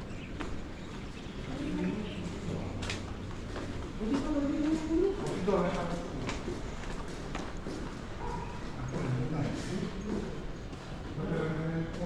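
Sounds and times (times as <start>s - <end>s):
footsteps on tiled floor: 0.0s - 12.0s
people talking: 1.4s - 3.0s, 4.0s - 6.4s, 8.8s - 10.4s, 11.2s - 12.0s.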